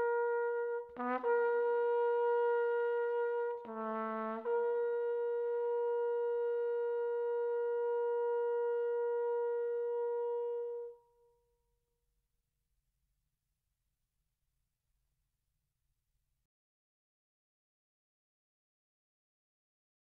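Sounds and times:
flugelhorn long high note: 0:00.0 - 0:11.2.

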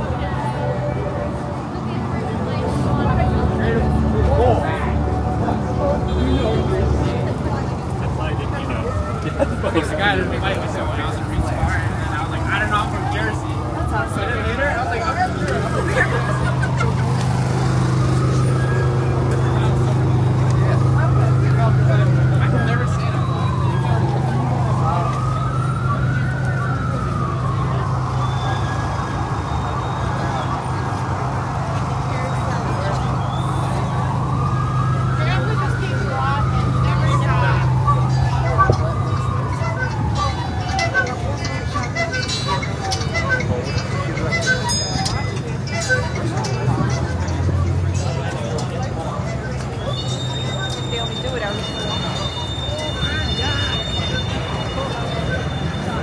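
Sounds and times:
emergency siren wailing: 0:00.0 - 0:56.0
street noise: 0:00.0 - 0:56.0.

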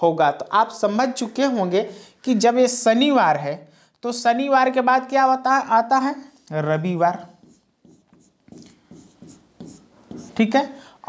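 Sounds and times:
stylus writing on screen: 0:06.0 - 0:10.8.

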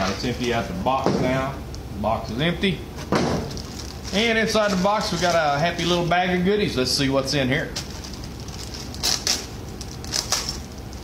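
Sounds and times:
plastic bag crinkling: 0:03.5 - 0:06.1, 0:07.7 - 0:11.0.

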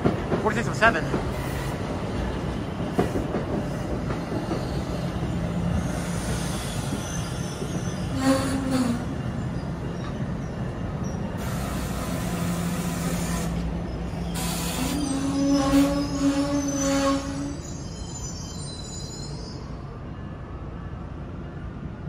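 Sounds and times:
train wheels rumbling on rail: 0:00.0 - 0:19.4
train wheel squeal: 0:03.0 - 0:20.3.

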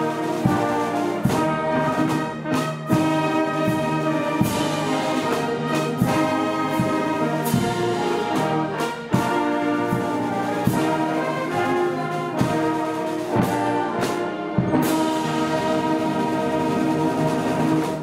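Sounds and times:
brass band playing slow chords: 0:00.0 - 0:18.0
regular beat strokes: 0:00.0 - 0:18.0.

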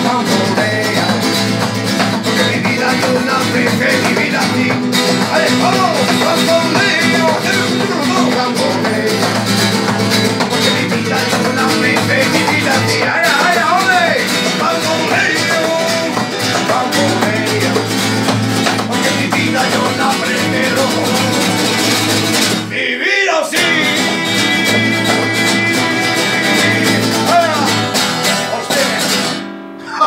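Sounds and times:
acoustic guitars strumming: 0:00.0 - 0:30.0
man singing: 0:00.0 - 0:30.0.

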